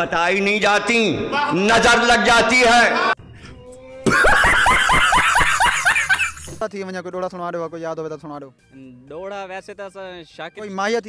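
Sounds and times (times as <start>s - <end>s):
man laughing shrilly: 4.0s - 6.6s.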